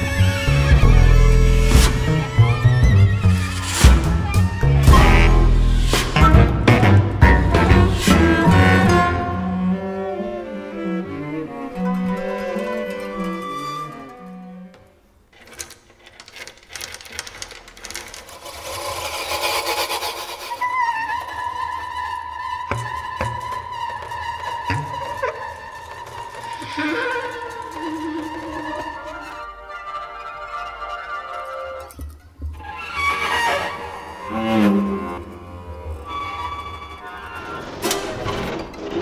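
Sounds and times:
improvising ensemble: 0.0s - 14.8s
rapid clicking and rattling: 15.3s - 20.6s.

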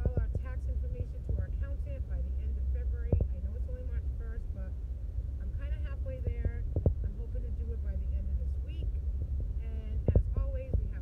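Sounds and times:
person talking: 0.0s - 4.7s, 5.4s - 8.9s, 9.6s - 11.0s
car cabin road and engine rumble: 0.0s - 11.0s.

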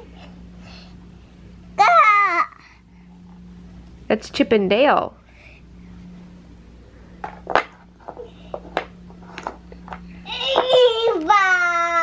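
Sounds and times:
wooden puzzle pieces knocking: 7.2s - 10.9s.

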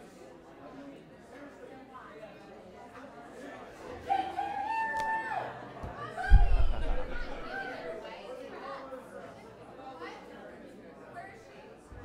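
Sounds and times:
low crowd chatter: 0.0s - 12.0s.

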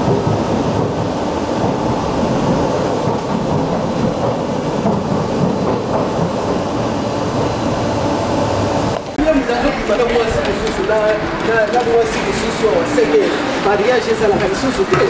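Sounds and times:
train wheels rumbling: 0.0s - 15.0s.

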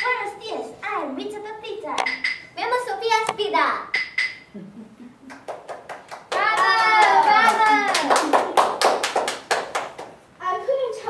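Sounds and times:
rhythmic hand clapping: 5.2s - 10.2s.

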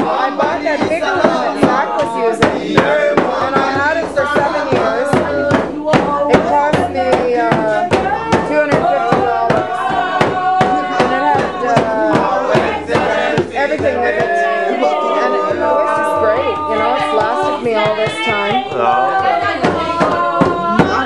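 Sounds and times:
frame drum beaten with a stick: 0.0s - 21.0s
voices singing together: 0.0s - 21.0s.

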